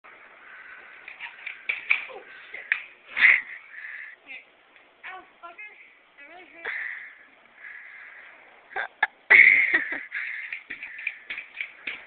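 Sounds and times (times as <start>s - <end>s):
pogo stick clanking on concrete: 10.2s - 12.0s.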